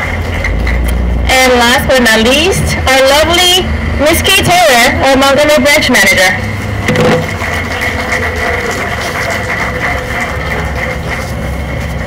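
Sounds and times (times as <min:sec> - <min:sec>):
steady background hum: 0:00.0 - 0:12.0
audience applauding: 0:06.7 - 0:12.0.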